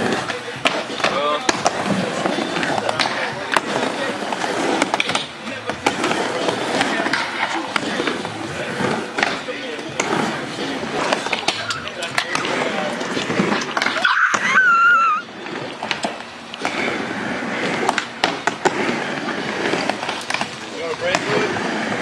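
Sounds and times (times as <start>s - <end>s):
skateboard clacking on ramp: 0.0s - 14.5s, 17.6s - 22.0s
skateboard wheels rolling: 0.0s - 22.0s.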